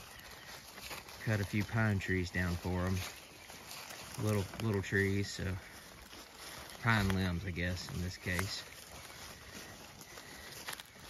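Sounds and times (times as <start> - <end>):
rustling among pine needles: 0.0 - 11.0
sheep chewing: 0.0 - 11.0.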